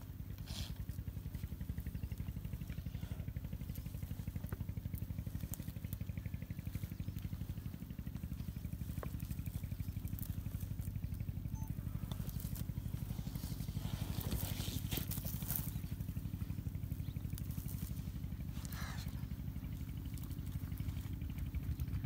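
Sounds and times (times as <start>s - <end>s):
engine idling: 0.0s - 22.0s
faint clicks and crackles: 0.1s - 22.0s.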